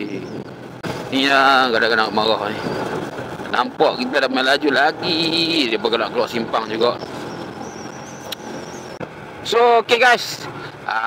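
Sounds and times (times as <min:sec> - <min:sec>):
motorcycle engine running: 0:00.0 - 0:09.4
road and wind noise: 0:00.0 - 0:11.0.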